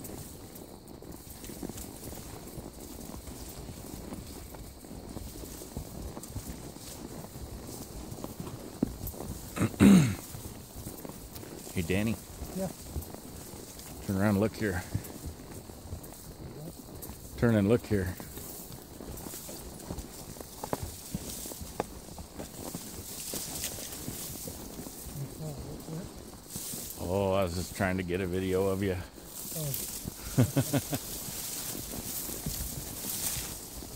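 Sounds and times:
horse hooves on rocky trail: 0.0s - 33.9s.

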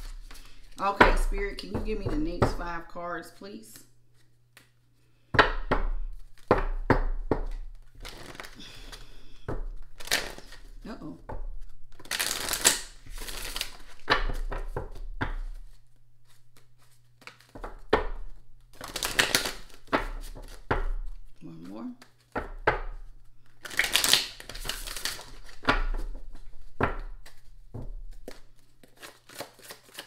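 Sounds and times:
cards shuffling: 0.0s - 1.8s, 7.4s - 30.0s
cards clicking and slapping: 4.2s - 4.8s, 6.2s - 10.7s, 11.6s - 20.9s, 22.0s - 27.5s, 28.1s - 30.0s.

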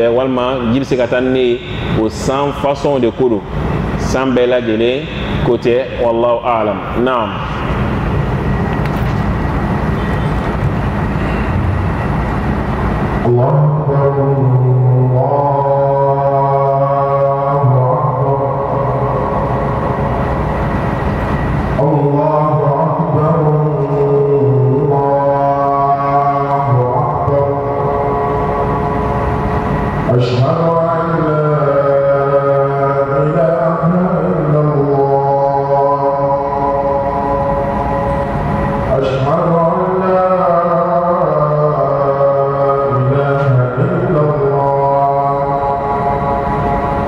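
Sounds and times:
man chanting slowly: 0.0s - 7.8s, 13.2s - 20.6s, 21.8s - 47.0s.

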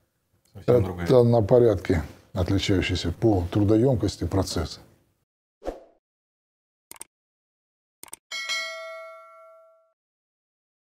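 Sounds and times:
notification bell ding: 8.3s - 10.0s.

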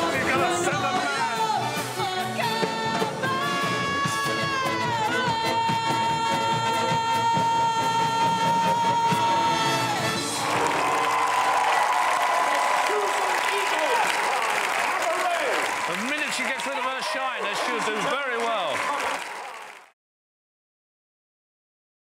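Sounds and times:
band playing: 0.0s - 11.6s
crowd cheering and applauding: 0.0s - 20.0s.

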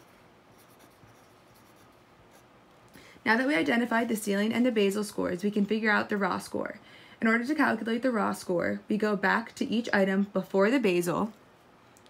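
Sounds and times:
pencil scratching on paper: 0.0s - 2.5s.

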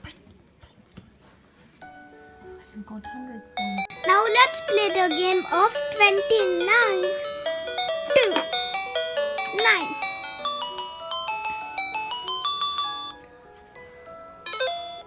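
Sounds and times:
toy playing electronic beep tune: 3.6s - 13.2s, 14.1s - 15.0s.

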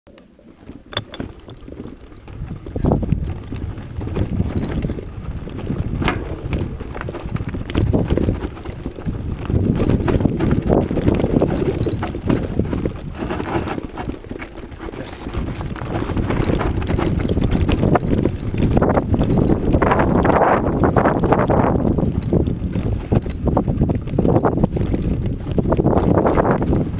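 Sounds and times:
mountain bike rattling on dirt trail: 0.4s - 26.9s
tyres crunching over gravel: 1.0s - 26.9s.

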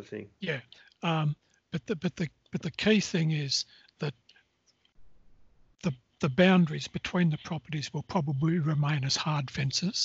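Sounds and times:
man speaking: 0.0s - 4.2s, 5.8s - 10.0s.

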